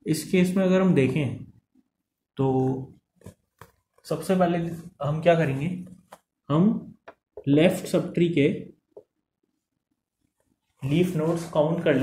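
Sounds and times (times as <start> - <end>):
man speaking: 0.0 - 1.6, 2.4 - 3.0, 4.0 - 8.8, 10.8 - 12.0
marker tapping on whiteboard: 6.9 - 7.6, 8.9 - 9.2.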